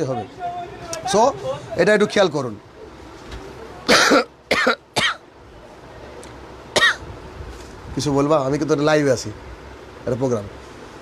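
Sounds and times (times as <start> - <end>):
man coughing: 3.9 - 5.2, 6.8 - 7.0.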